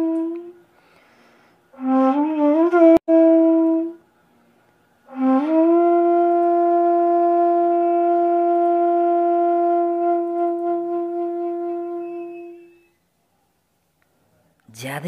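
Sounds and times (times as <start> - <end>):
bamboo flute long note: 5.1 - 12.9.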